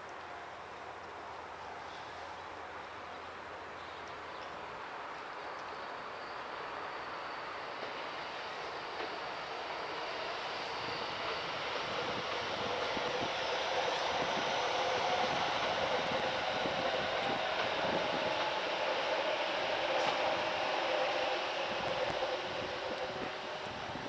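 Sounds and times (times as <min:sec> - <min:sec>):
electric train rumbling on tracks: 0:00.0 - 0:24.0.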